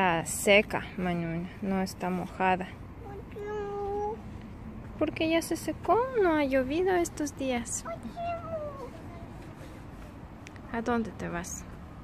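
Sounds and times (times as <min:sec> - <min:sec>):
toddler vocal call: 0:07.8 - 0:09.1.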